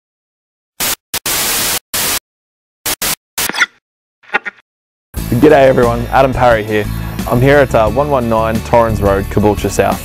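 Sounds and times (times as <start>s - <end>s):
television static hiss bursts: 0.8s - 2.2s.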